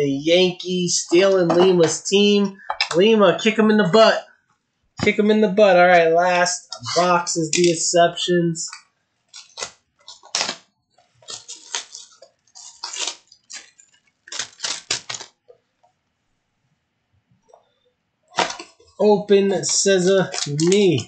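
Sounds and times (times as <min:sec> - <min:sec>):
shrink wrap crinkling and tearing: 0:08.6 - 0:15.5, 0:18.4 - 0:21.0.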